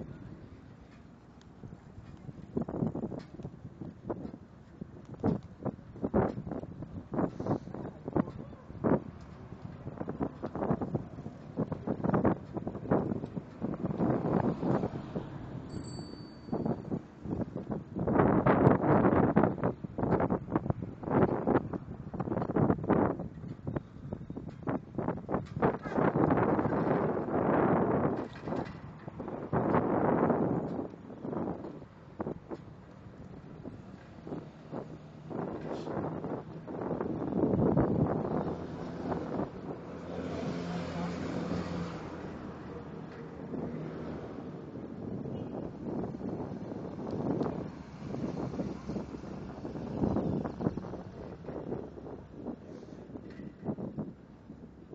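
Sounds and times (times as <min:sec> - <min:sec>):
wind buffeting microphone: 0:00.0 - 0:15.7, 0:16.5 - 0:54.9.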